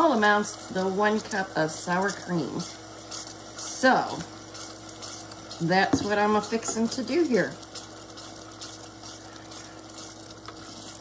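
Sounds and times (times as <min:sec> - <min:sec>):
gravy simmering in a saucepan: 0:00.0 - 0:11.0
spatula stirring: 0:00.2 - 0:11.0.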